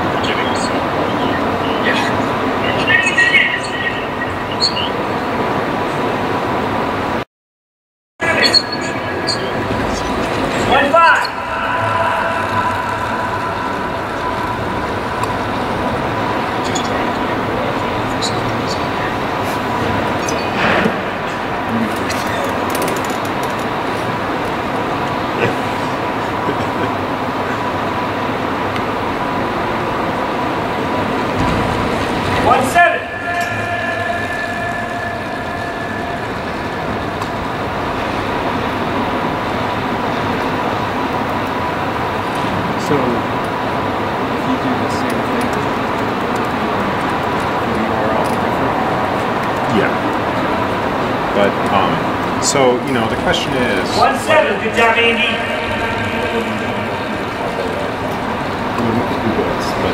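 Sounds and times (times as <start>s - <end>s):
constant high hum: 0.0s - 7.2s, 8.2s - 59.9s
indistinct voices: 0.0s - 7.2s, 8.2s - 59.9s
steady pitched tone: 8.2s - 59.9s.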